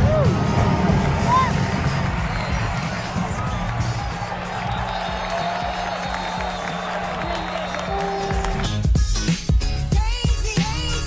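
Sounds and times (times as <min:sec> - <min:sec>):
stadium crowd hubbub: 0:00.0 - 0:08.9
music over loudspeakers: 0:00.0 - 0:11.0.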